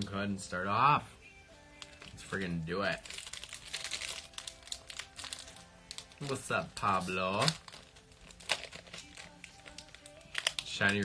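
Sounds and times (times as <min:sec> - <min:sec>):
foil wrapper crinkling and tearing: 0:01.7 - 0:11.0.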